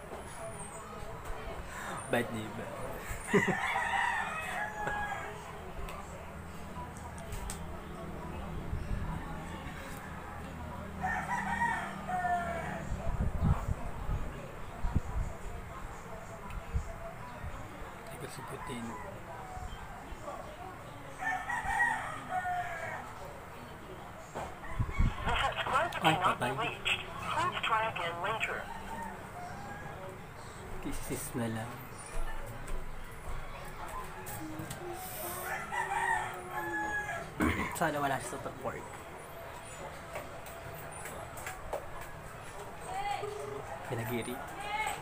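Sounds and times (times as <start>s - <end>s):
rooster crowing: 3.3s - 5.4s, 11.0s - 12.8s, 28.6s - 30.1s, 35.4s - 37.6s.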